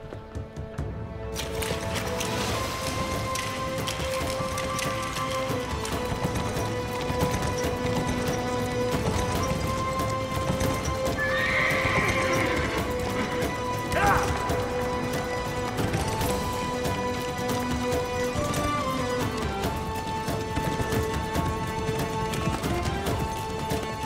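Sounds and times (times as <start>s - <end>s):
dramatic music score: 0.0s - 24.0s
horses galloping hoofbeats: 0.0s - 24.0s
horse whinny: 11.0s - 14.6s.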